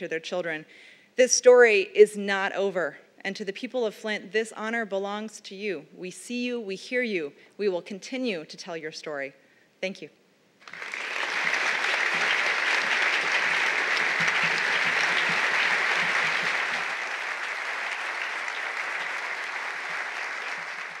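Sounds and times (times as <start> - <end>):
audience applauding: 10.6 - 21.0.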